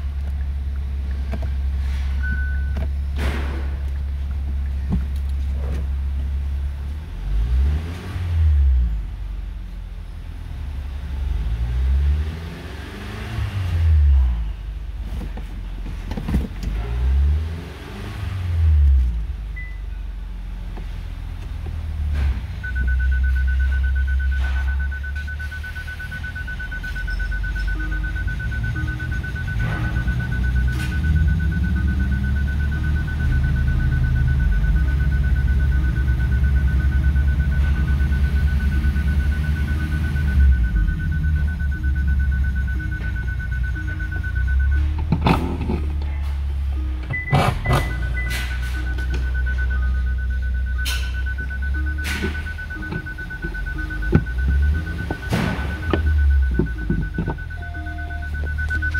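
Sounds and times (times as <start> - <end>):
car engine revving and idling: 0.0 - 58.9
high electronic tone: 46.8 - 58.9.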